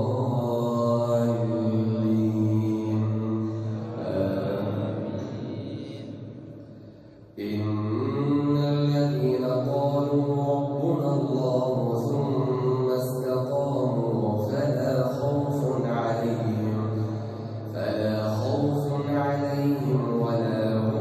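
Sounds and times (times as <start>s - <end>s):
man chanting through microphone: 0.0s - 21.0s.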